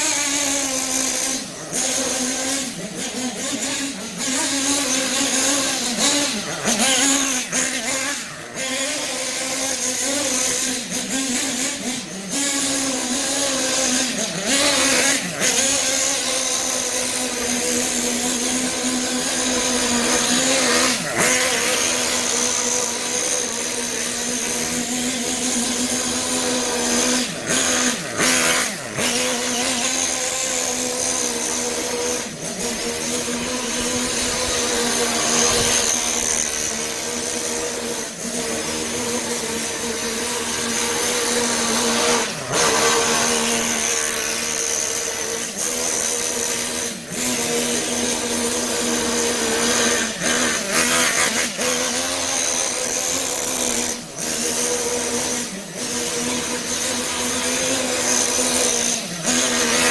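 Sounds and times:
nitro engine running hard: 0:00.0 - 0:59.9.

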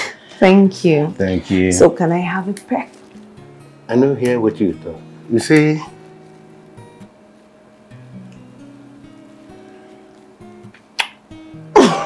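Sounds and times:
soft plucked guitar music: 0:00.5 - 0:12.0.

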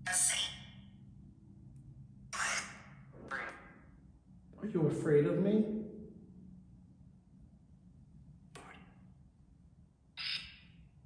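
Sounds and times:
harsh squawk-like device noise: 0:00.0 - 0:00.9, 0:02.2 - 0:04.0, 0:10.1 - 0:10.9.

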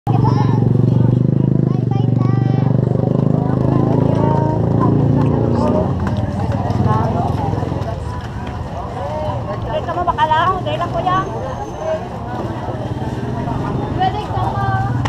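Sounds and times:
people talking: 0:00.1 - 0:15.0.

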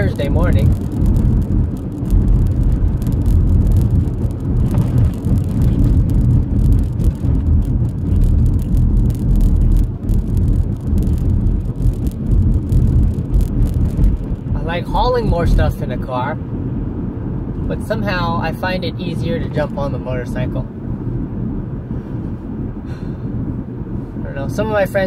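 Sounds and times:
car engine and road noise: 0:00.0 - 0:25.0.

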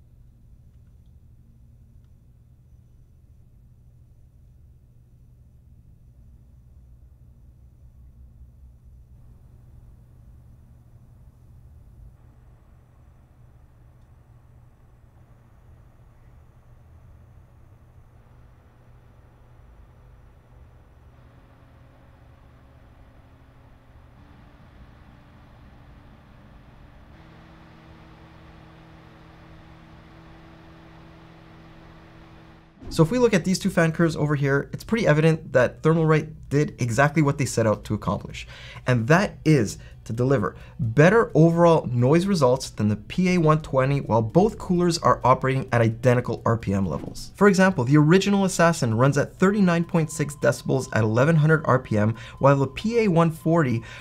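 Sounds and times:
humming fan tones: 0:00.0 - 0:54.0.

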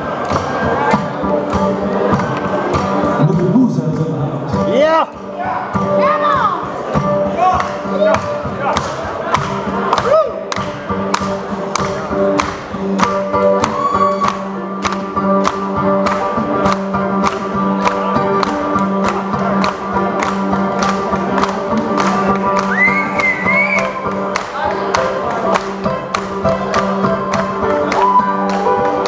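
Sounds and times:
electric bass: 0:00.0 - 0:29.0
drum kit beat: 0:04.6 - 0:29.0.

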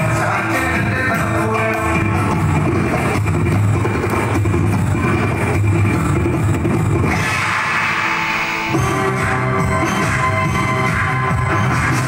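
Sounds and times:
upbeat folk song playing loud: 0:00.0 - 0:07.0.

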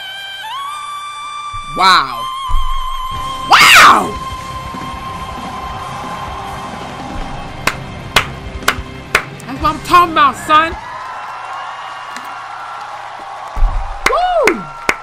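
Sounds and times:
sharp knocks: 0:07.2 - 0:09.4.

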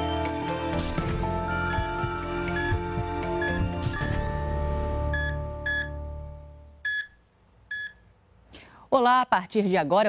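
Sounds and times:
short electronic beeps: 0:03.4 - 0:04.1, 0:05.1 - 0:06.0, 0:06.8 - 0:08.0.

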